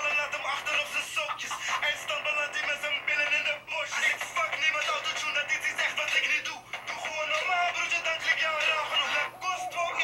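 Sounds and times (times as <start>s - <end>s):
man rapping over a beat: 0.0s - 10.0s.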